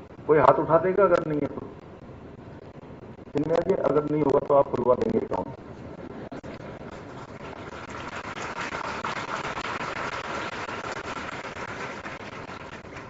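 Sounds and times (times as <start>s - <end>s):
scattered clapping: 6.5s - 13.0s.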